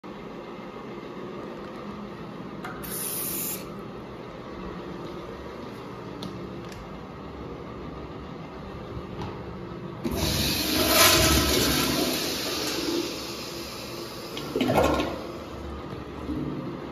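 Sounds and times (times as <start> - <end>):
toilet flushing: 10.0 - 16.9.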